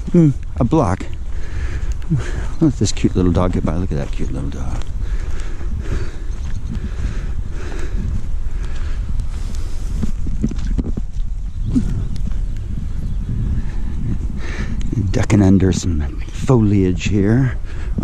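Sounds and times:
microphone handling noise: 0.0 - 16.7
footsteps on path: 0.0 - 18.0
wind rumble: 0.0 - 18.0.

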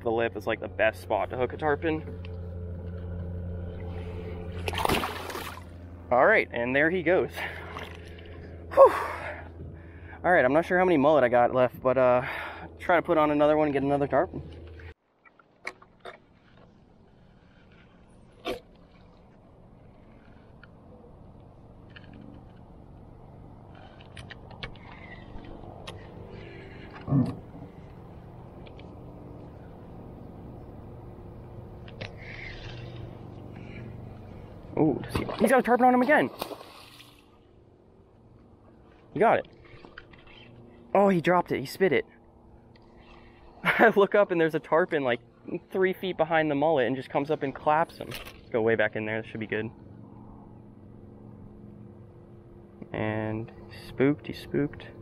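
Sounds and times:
steady low hum: 0.0 - 15.0, 15.7 - 55.0
water splashing beside boat: 4.5 - 5.8, 35.0 - 37.4.

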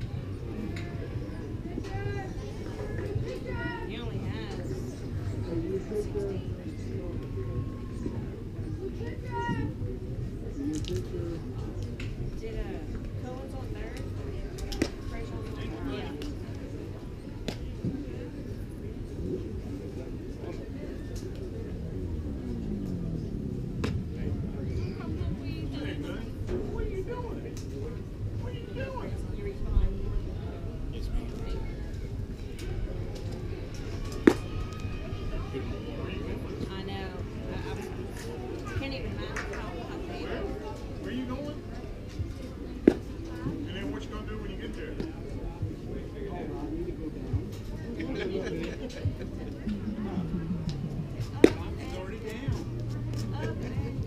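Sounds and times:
murmur of spectators: 0.0 - 54.0.

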